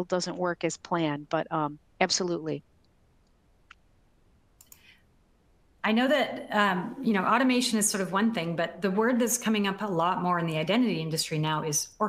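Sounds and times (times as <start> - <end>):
woman speaking: 0.0 - 2.6, 5.8 - 12.0
faint click and rustle: 4.6 - 5.0.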